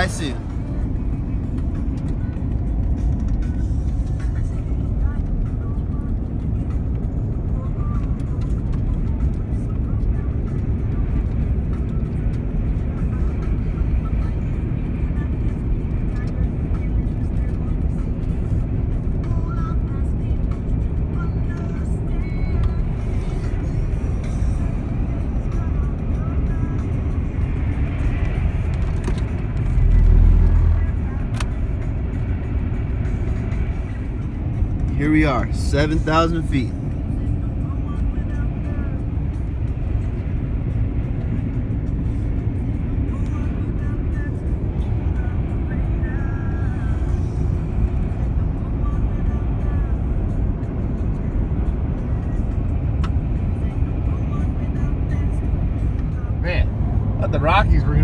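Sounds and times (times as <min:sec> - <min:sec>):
car road rumble: 0:00.0 - 0:58.0.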